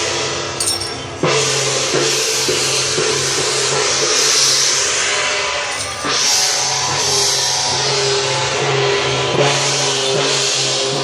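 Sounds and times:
large hand cymbals ringing: 0:00.4 - 0:11.0.

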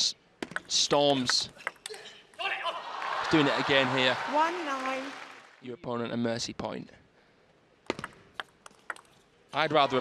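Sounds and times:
table tennis ball clicks: 0:07.9 - 0:09.2.

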